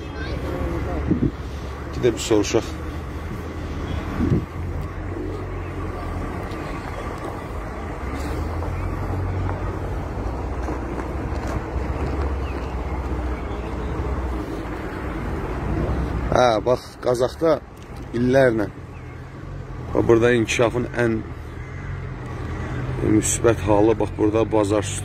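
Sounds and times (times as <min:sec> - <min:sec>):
vehicle engines: 0:00.0 - 0:25.0
wind on microphone: 0:01.0 - 0:01.5, 0:03.1 - 0:04.8.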